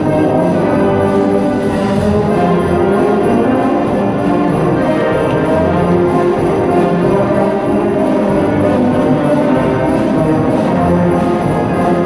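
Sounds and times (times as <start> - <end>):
wind band playing swing music: 0.0 - 12.0.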